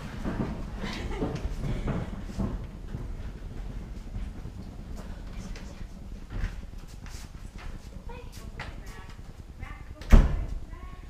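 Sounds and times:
door slamming: 0:10.1 - 0:10.5.

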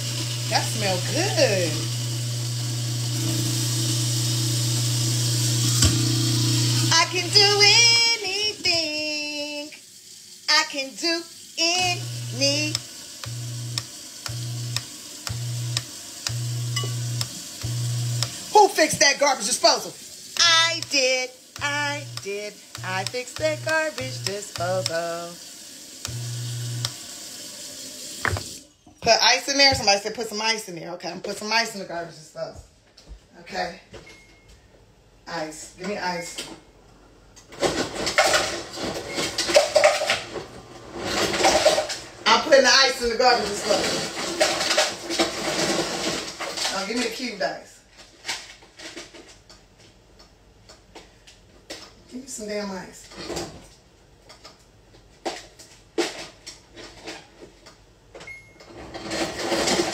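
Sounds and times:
garbage disposal hum: 0:00.0 - 0:30.5, 0:34.9 - 0:59.9
ice clattering from dispenser: 0:11.0 - 0:27.4, 0:37.5 - 0:42.6, 0:43.2 - 0:47.3, 0:58.7 - 0:59.9.

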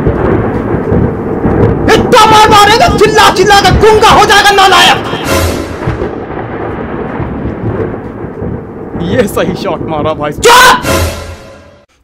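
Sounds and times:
thunder rumble: 0:00.0 - 0:11.7.

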